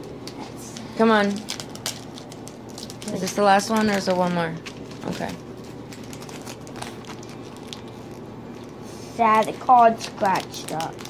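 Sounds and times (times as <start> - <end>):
foil wrapper crinkling: 0.2 - 11.0.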